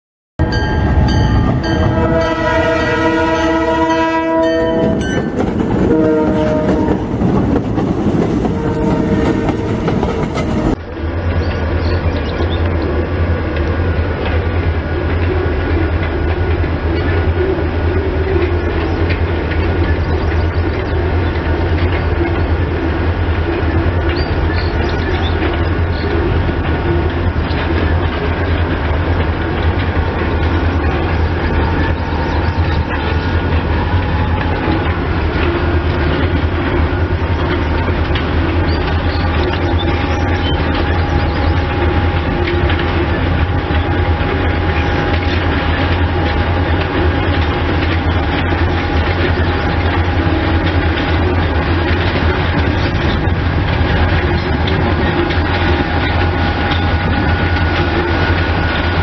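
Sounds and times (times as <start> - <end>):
distant freight train rumbling: 0.4 - 59.0
locomotive air horn blasts: 1.6 - 5.1, 5.8 - 7.2, 8.4 - 10.8.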